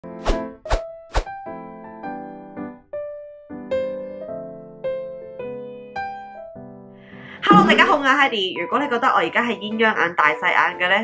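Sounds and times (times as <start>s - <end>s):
intro jingle music: 7.4s - 8.7s.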